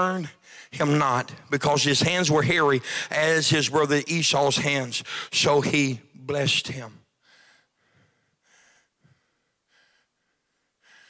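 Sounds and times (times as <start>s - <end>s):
breaths into microphone: 5.1s - 5.4s.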